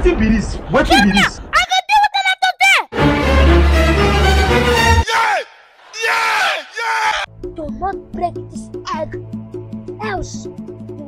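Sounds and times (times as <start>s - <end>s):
people shouting: 4.9s - 7.3s.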